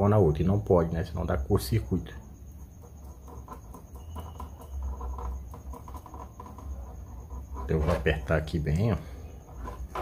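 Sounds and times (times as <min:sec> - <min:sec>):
nuts scratching and clicking on threads: 0:02.6 - 0:10.0.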